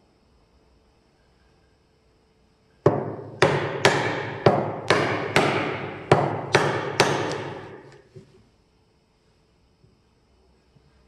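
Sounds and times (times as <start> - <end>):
hammer striking chisel into wood: 2.9 - 8.0.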